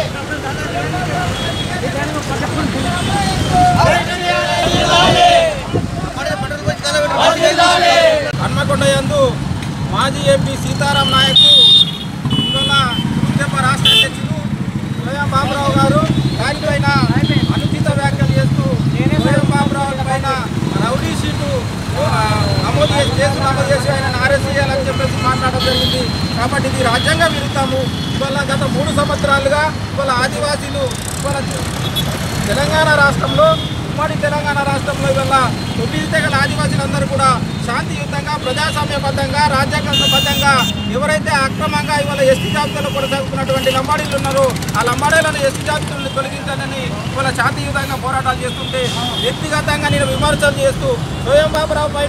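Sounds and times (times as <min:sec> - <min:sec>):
passing street traffic: 0:00.0 - 0:52.0
men shouting slogans: 0:02.8 - 0:08.6.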